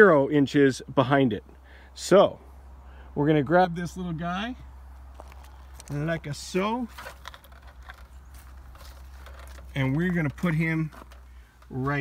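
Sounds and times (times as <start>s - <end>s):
footsteps on gravel and leaves: 4.9s - 12.0s
plastic heater handling: 6.9s - 11.8s.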